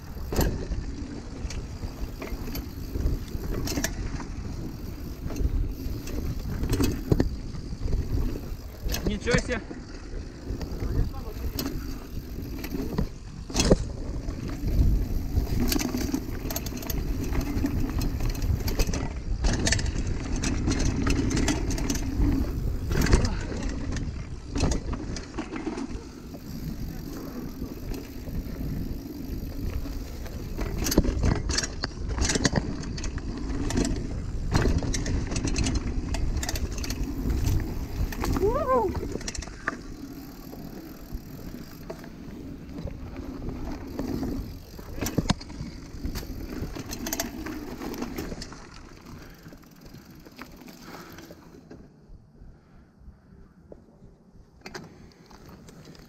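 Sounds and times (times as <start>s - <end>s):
bike frame rattling: 0.0s - 51.6s
bike tyres rumbling on dirt: 0.0s - 52.3s.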